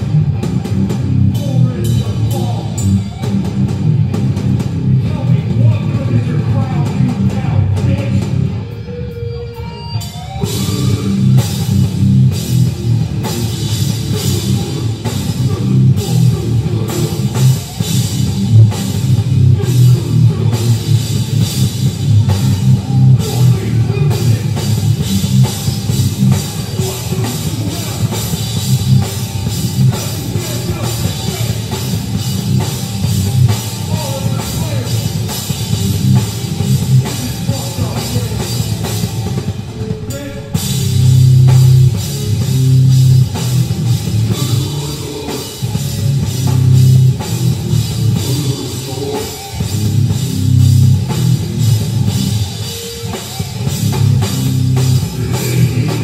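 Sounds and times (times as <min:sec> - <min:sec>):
hardcore band playing live: 0:00.0 - 0:56.0.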